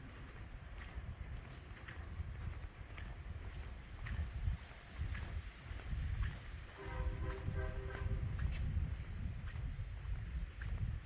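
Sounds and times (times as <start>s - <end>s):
faint footsteps: 0.0s - 11.0s
wind buffeting microphone: 0.0s - 11.0s.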